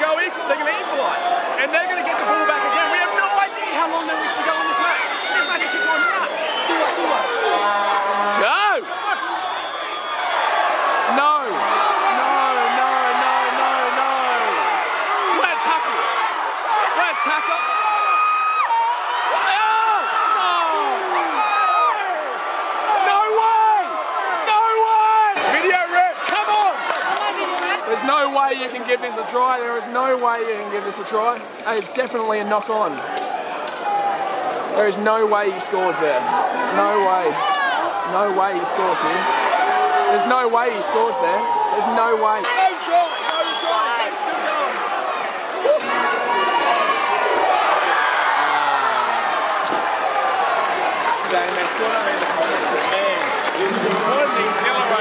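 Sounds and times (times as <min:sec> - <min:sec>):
stadium crowd cheering: 0:00.0 - 0:55.0.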